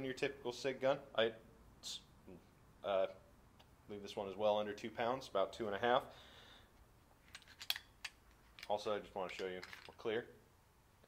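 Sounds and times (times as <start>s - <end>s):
pistol action metallic clicks: 7.3s - 8.7s.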